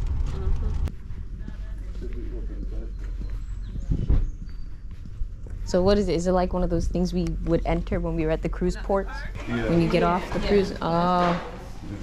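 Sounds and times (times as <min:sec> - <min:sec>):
footsteps on asphalt: 0:00.0 - 0:08.5
wind rumble on microphone: 0:00.0 - 0:08.6
faint voices: 0:00.2 - 0:04.2.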